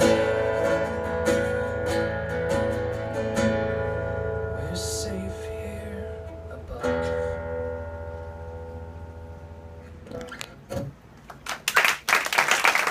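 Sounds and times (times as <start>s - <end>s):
acoustic guitar chord ringing: 0.0s - 11.0s
applause: 11.2s - 12.9s
people clapping: 11.2s - 12.9s.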